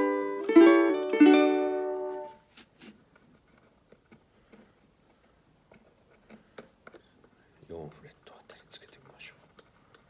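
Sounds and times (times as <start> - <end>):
fingers rustling on ukulele strings: 0.2 - 7.9.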